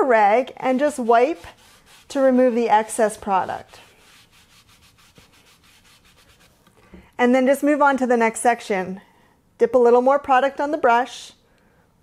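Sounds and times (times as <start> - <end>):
cloth rag rubbing wood: 0.6 - 6.6.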